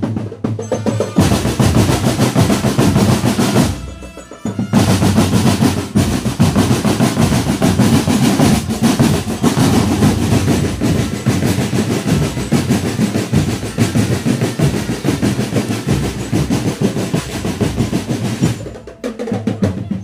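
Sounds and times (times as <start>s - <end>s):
snare drums: 0.0s - 20.0s.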